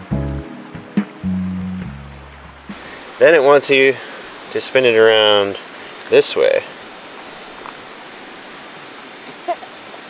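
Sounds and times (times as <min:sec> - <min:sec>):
river rushing: 0:00.4 - 0:10.0.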